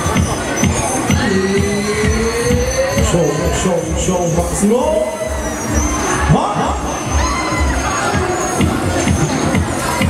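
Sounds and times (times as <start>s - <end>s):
fairground music with bass beat: 0.0s - 10.0s
riders screaming: 7.0s - 8.4s.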